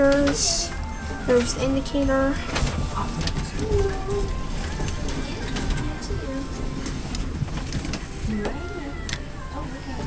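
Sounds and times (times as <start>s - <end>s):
indistinct passenger chatter: 0.0s - 10.0s.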